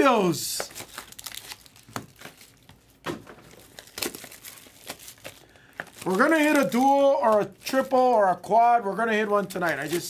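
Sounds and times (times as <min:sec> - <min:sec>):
foil wrapper crinkling: 0:00.1 - 0:08.4, 0:09.2 - 0:10.0.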